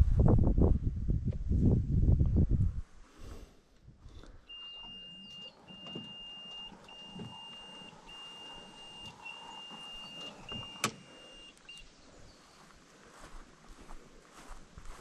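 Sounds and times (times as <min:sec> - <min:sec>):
electronic beeper high tone: 0:04.5 - 0:11.8.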